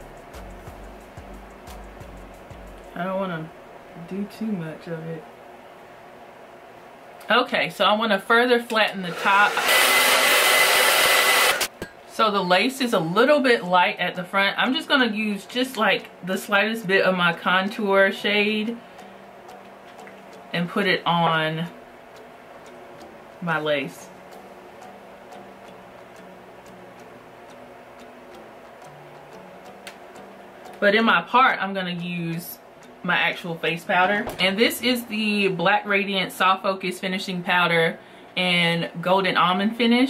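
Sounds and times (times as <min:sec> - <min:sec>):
steady ticking beat: 0:00.0 - 0:03.0, 0:21.7 - 0:23.4, 0:24.1 - 0:30.8
hair dryer blowing: 0:08.8 - 0:11.7.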